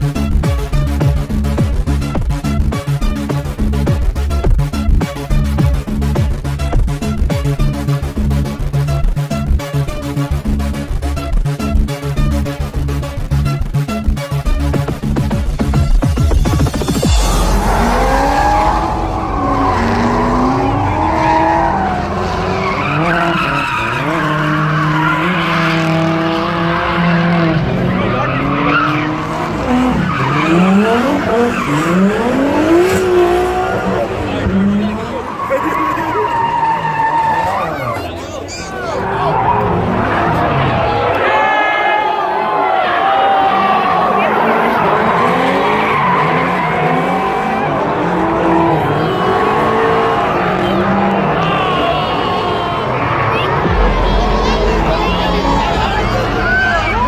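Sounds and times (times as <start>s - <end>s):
car engine revving hard: 16.5s - 37.9s, 43.4s - 57.0s
tires squealing: 16.7s - 57.0s
tyres screeching on asphalt: 17.1s - 41.4s, 43.2s - 57.0s.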